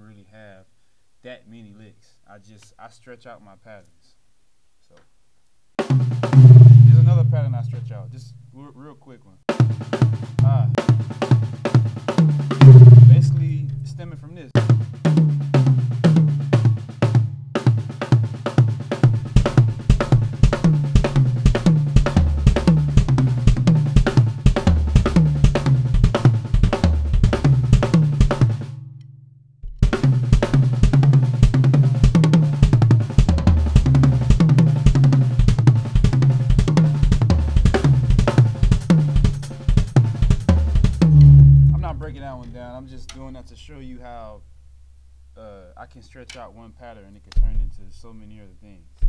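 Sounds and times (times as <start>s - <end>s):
drum kit played fast: 5.8s - 8.2s, 9.5s - 28.8s, 29.6s - 44.4s
loud low drum hit: 5.9s - 7.9s, 9.6s - 28.7s, 29.6s - 43.0s.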